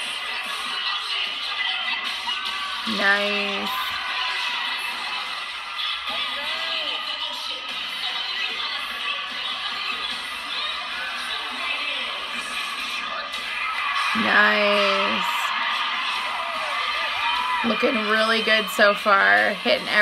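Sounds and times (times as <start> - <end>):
cheerleading music over speakers: 0.0 - 20.0
crowd cheering and shouting: 0.0 - 20.0.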